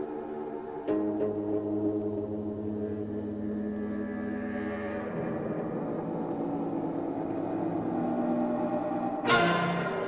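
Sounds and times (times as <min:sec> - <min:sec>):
low sustained drone: 0:00.0 - 0:10.0.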